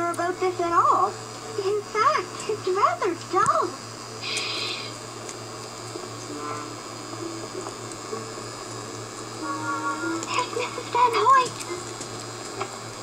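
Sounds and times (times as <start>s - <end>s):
steady low hum: 0.0s - 13.0s
brief hissing burst: 4.2s - 5.0s
quiet background music: 6.0s - 11.6s.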